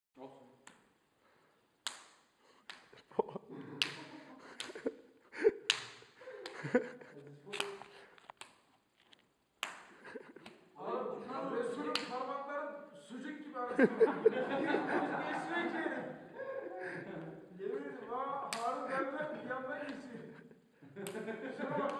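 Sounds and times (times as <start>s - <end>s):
hand slaps on skin: 1.8s - 3.0s, 3.8s - 4.9s, 5.6s - 6.8s, 7.5s - 8.6s, 9.6s - 10.6s, 11.8s - 12.2s, 18.5s - 18.8s, 21.0s - 21.9s.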